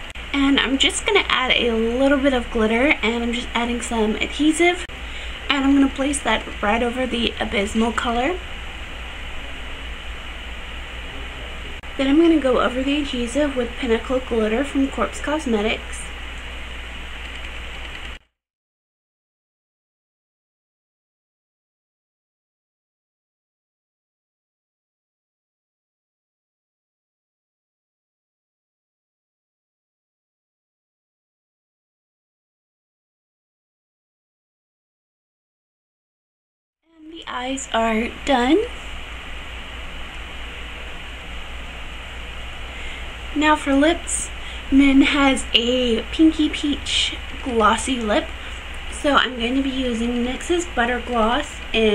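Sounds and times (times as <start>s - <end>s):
steady hiss: 0.0s - 12.1s
low electrical hum: 0.0s - 18.2s, 36.9s - 51.9s.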